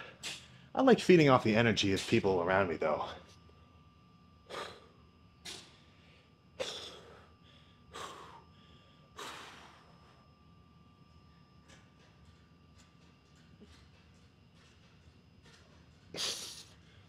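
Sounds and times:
quiet breathing: 5.7 - 10.4.

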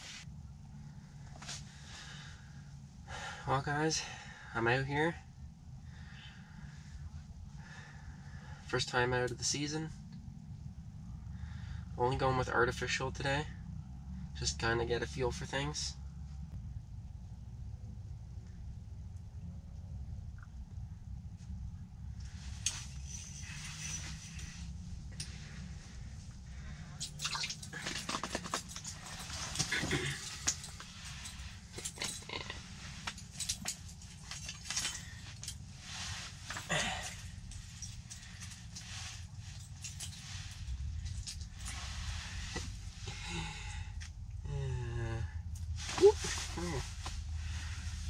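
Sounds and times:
clothing rustling: 22.3 - 43.2, 45.7 - 48.0.

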